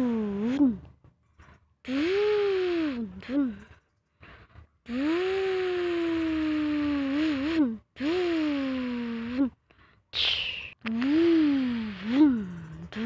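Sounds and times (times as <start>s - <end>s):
person imitating truck engine: 0.0s - 0.9s, 1.9s - 3.7s, 4.9s - 9.6s, 10.2s - 13.0s.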